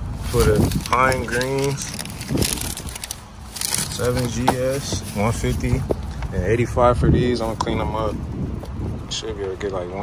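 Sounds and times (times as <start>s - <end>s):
paper and plastic rustling: 0.0s - 6.3s.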